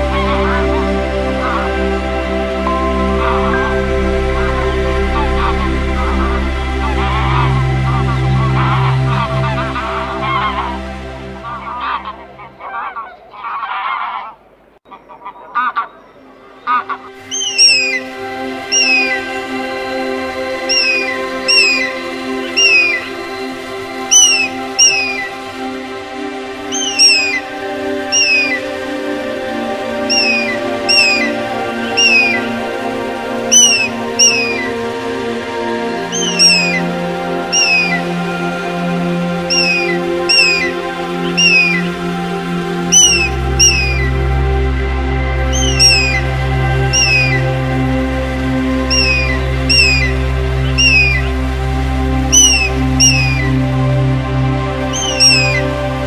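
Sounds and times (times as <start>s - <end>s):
music drone: 0.0s - 13.0s, 16.3s - 56.0s
bird high falling calls: 0.0s - 35.0s, 35.6s - 44.6s, 45.3s - 56.0s
geese honking: 0.0s - 56.0s.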